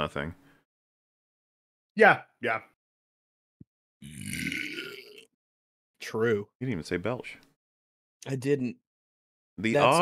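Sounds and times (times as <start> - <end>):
person burping: 4.0 - 5.3.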